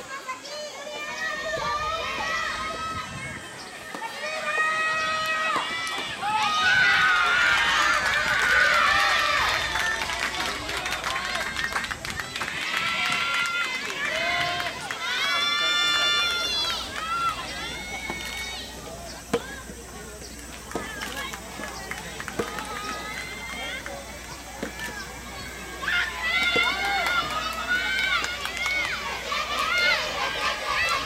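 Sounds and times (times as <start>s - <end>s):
girls shouting cheers: 0.3s - 10.1s, 25.8s - 31.0s.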